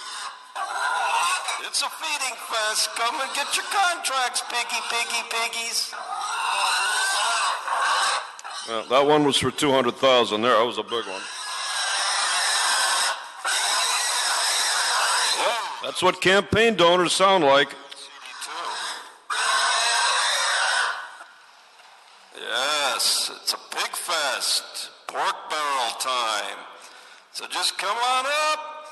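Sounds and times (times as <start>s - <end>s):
pig squealing: 0.0s - 9.4s, 10.8s - 16.1s, 18.2s - 21.2s.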